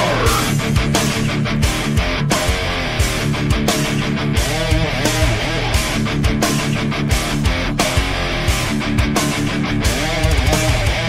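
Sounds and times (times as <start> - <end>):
distorted electric guitar riff: 0.0 - 11.0
full band backing track: 0.0 - 11.0.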